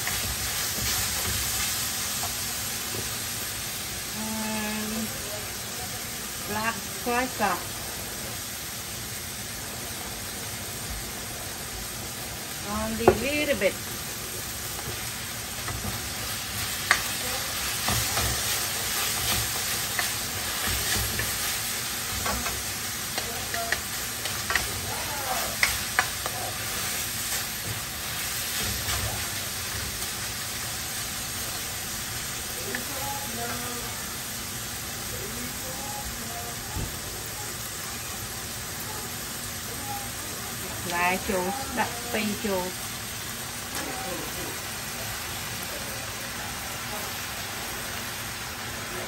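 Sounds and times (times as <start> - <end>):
meat sizzling in a wok: 0.0 - 49.0
spatula scraping and tapping wok: 16.6 - 17.2, 25.6 - 26.7.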